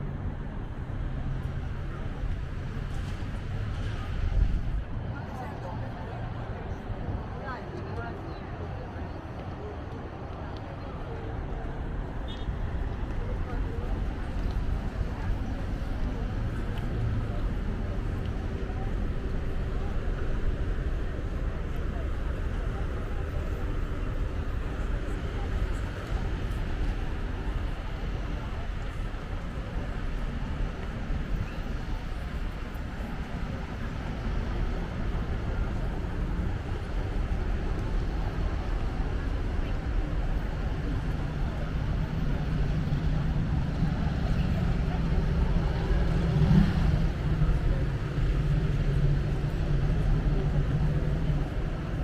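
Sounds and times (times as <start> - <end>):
traffic rumble: 0.0 - 52.0
people talking: 1.1 - 52.0.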